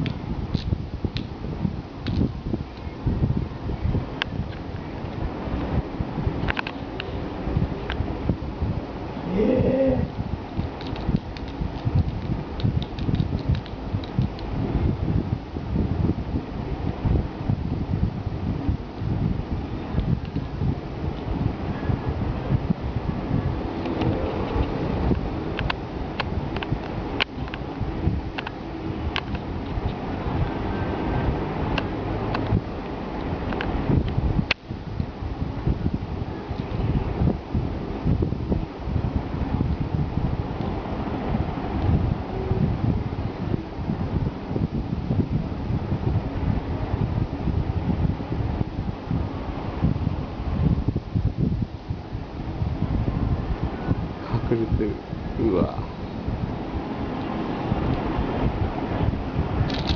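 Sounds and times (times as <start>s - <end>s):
low rumbling on microphone: 0.0s - 59.9s.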